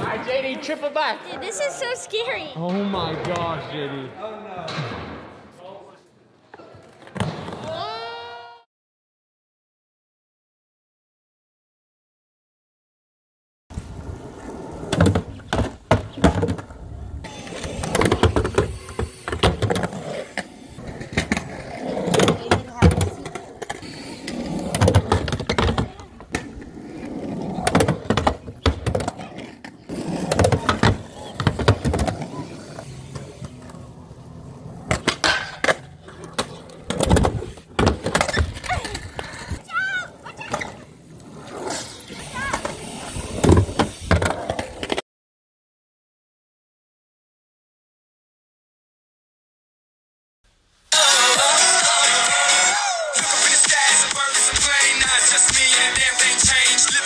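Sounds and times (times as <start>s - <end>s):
skateboard rolling on concrete: 13.7s - 45.0s, 50.9s - 57.0s
voices: 38.6s - 41.0s.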